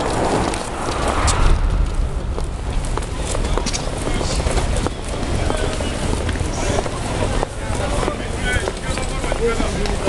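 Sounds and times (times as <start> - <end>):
wind buffeting microphone: 0.0 - 8.0
voices of people in crowd: 0.1 - 10.0.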